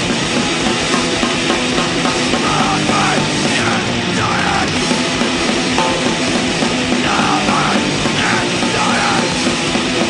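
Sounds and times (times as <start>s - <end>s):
distorted guitar: 0.0s - 10.0s
drum kit: 0.0s - 10.0s
distorted bass: 5.8s - 8.2s.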